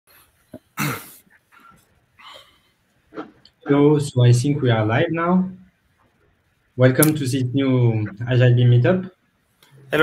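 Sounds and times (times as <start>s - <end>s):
person coughing loudly: 0.8s - 1.7s.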